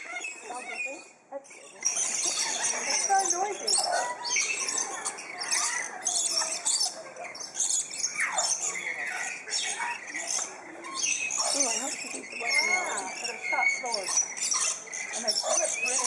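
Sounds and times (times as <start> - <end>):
indistinct human voices: 0.0 - 16.0
lorikeets screeching: 0.0 - 16.0.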